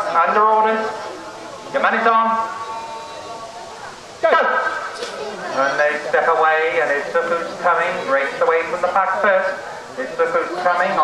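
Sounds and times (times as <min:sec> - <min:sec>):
man speaking over loudspeaker: 0:00.0 - 0:01.0, 0:01.7 - 0:02.8, 0:04.2 - 0:11.0
outdoor background noise: 0:00.0 - 0:11.0.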